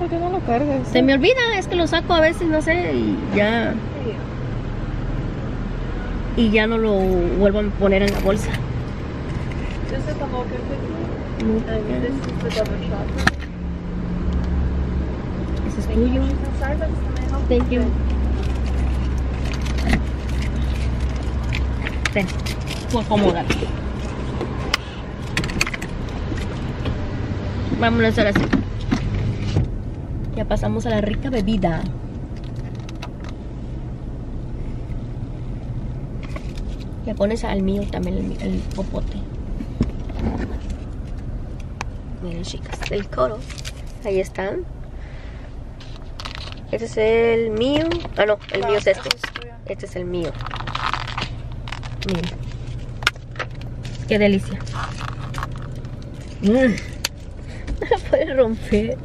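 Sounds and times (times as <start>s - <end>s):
vehicle cabin rumble: 0.0s - 59.0s
truck engine idling: 31.6s - 59.0s
plastic cups clicking and rustling: 45.8s - 46.7s, 47.6s - 58.8s.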